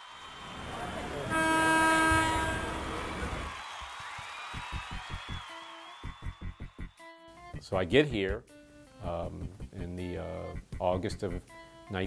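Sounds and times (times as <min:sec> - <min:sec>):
loud sustained horn blast: 0:00.7 - 0:03.5
music with pulsing rhythm: 0:04.6 - 0:07.7.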